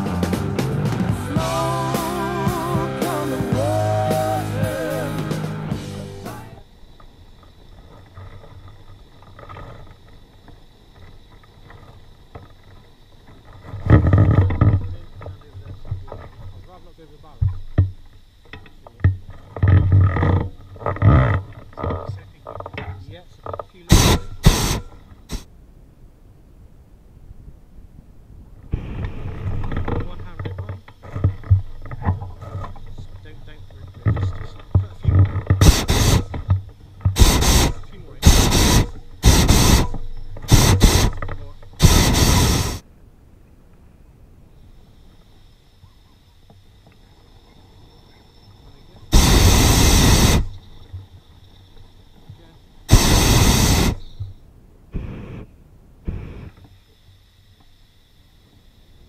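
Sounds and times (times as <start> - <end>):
propane burner blasts: 0.0 - 22.2, 22.8 - 25.5, 28.7 - 42.8, 48.8 - 56.7
faint high whine: 0.0 - 59.0.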